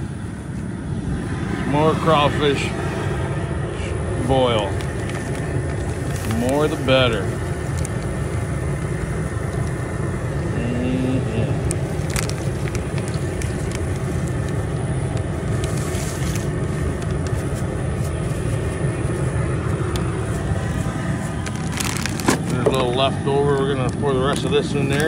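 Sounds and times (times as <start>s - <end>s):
gas burner rumbling: 0.0s - 25.0s.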